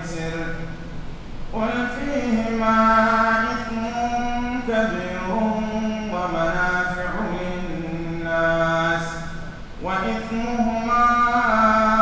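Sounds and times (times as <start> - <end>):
man chanting recitation: 0.0 - 0.9, 1.5 - 12.0.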